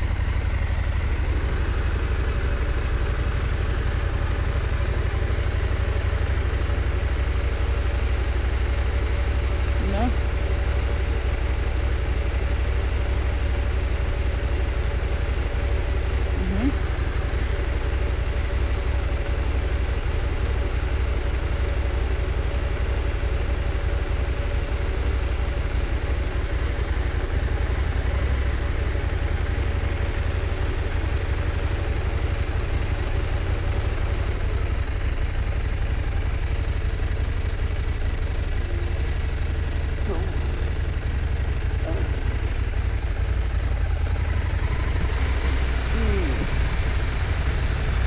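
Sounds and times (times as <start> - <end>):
motorcycle engine idling: 0.0 - 48.0.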